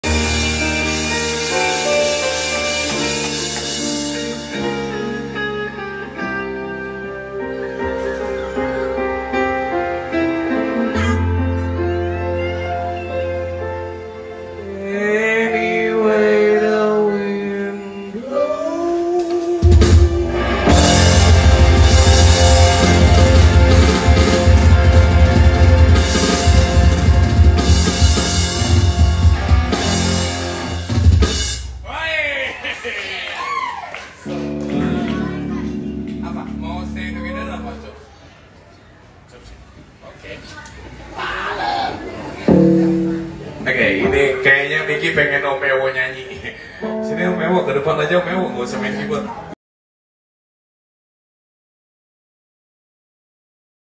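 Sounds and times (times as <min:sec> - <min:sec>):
band music with electric guitar: 0:00.0 - 0:16.8, 0:19.2 - 0:31.7, 0:34.2 - 0:38.2, 0:42.5 - 0:49.5
bass drum beat: 0:19.6 - 0:30.0.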